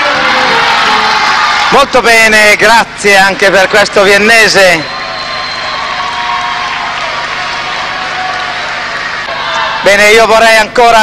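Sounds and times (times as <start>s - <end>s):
audience applauding: 0.0s - 2.0s, 3.6s - 10.0s
man speaking over public address: 1.7s - 4.9s, 9.8s - 11.0s.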